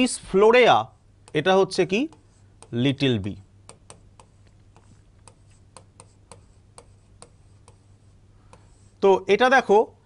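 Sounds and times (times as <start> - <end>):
stylus tapping on touchscreen: 3.6 - 7.9.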